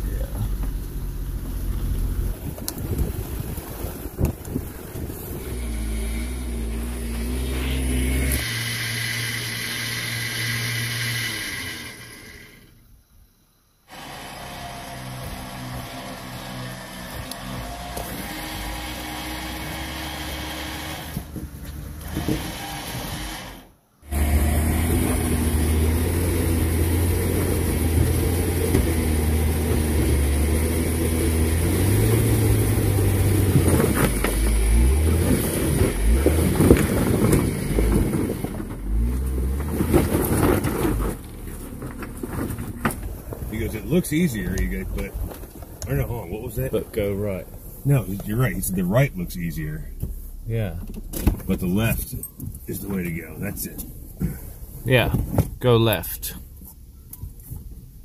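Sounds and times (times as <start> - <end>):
engines crawling over rocks: 35.7 - 49.8.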